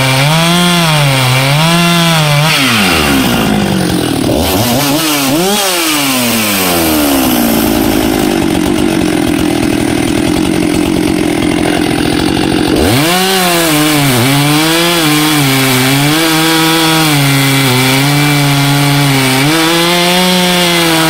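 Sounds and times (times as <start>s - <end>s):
chainsaw cutting log: 0.0s - 21.0s
chainsaw revving: 0.0s - 21.0s.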